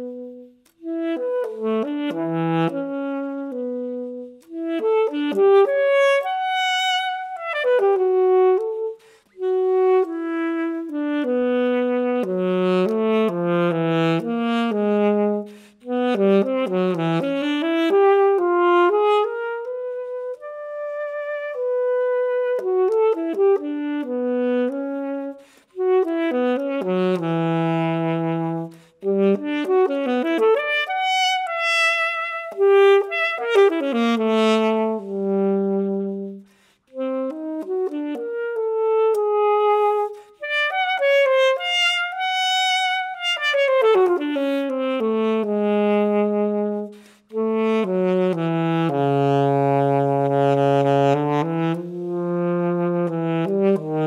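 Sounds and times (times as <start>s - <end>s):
alto saxophone solo: 0.0s - 54.0s.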